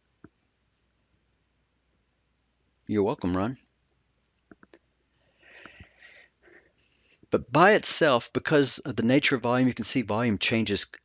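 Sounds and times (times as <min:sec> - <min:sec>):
soft clicks: 0:04.4 - 0:04.9
breaths at a microphone: 0:05.2 - 0:07.3.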